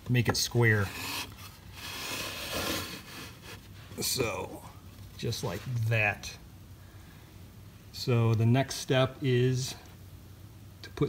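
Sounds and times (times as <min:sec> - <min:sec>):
wooden boards scraping together: 0:01.0 - 0:03.7.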